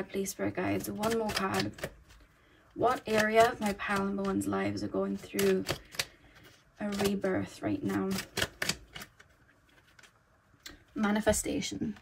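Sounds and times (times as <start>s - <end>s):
cards being shuffled: 0.8s - 2.3s, 2.9s - 10.2s.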